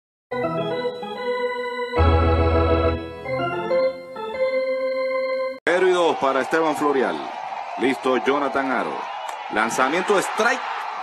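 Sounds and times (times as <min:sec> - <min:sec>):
electronic organ chords: 0:00.3 - 0:05.6.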